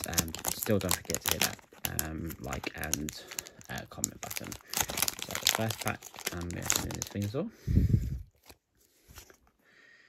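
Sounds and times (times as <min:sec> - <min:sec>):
trading cards clicking and rustling: 0:00.0 - 0:07.3.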